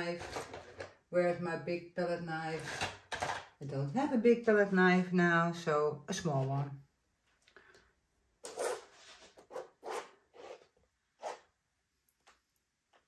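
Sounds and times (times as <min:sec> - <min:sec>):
palette knife scraping paint: 0:00.0 - 0:00.9, 0:08.4 - 0:11.5.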